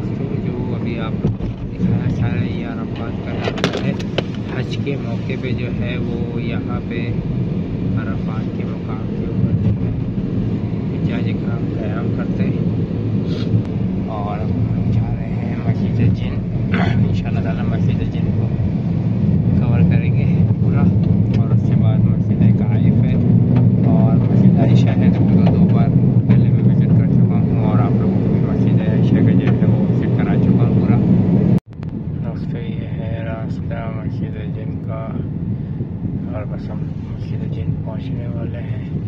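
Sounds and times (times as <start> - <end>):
man talking: 0.0 - 7.2, 7.9 - 9.9, 10.8 - 12.7, 14.0 - 18.6, 19.5 - 31.1, 32.2 - 35.3, 36.2 - 39.0
car engine and road drone: 0.0 - 39.0.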